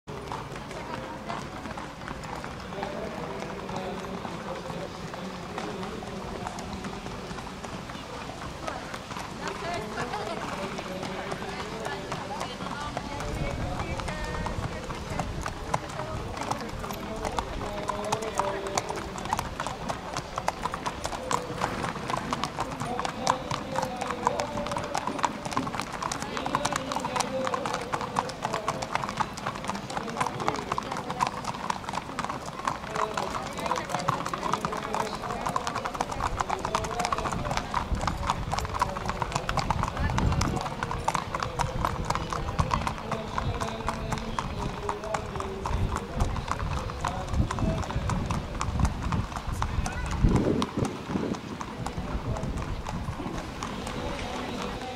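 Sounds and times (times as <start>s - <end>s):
hooves clip-clopping on pavement: 0.0s - 54.9s
murmur of crowd voices: 0.0s - 54.9s.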